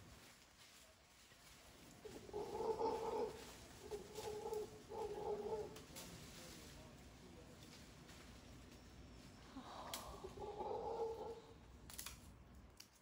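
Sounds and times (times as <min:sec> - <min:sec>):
howler monkey moaning calls: 0:02.0 - 0:05.9, 0:09.6 - 0:11.6.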